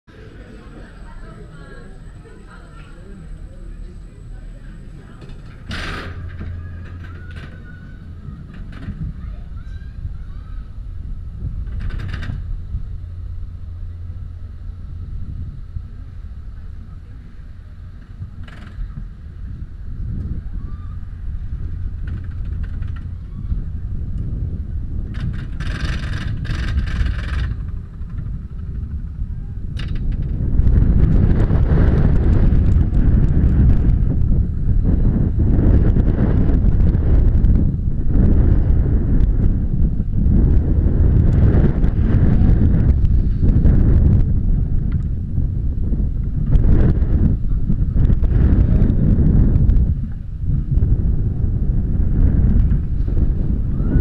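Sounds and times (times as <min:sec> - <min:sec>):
rumble of coaster wheels: 0:00.0 - 0:54.0
faint mechanical whine: 0:00.1 - 0:54.0
roller coaster train rumbling: 0:00.1 - 0:54.0
wind buffeting on microphone: 0:00.1 - 0:54.0.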